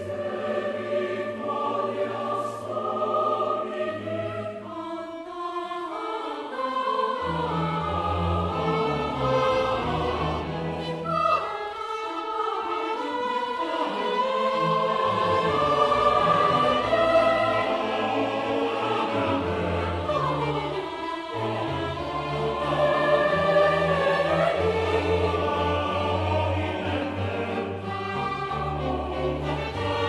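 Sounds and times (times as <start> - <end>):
choir singing: 0.0 - 30.0
orchestra playing: 7.2 - 30.0.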